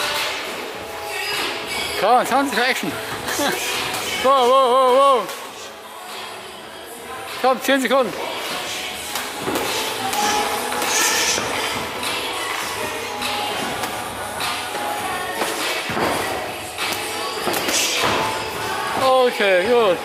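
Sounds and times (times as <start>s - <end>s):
music: 0.0s - 20.0s.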